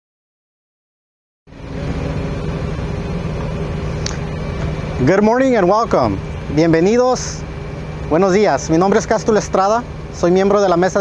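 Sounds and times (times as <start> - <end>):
large engine idling: 1.5 - 11.0.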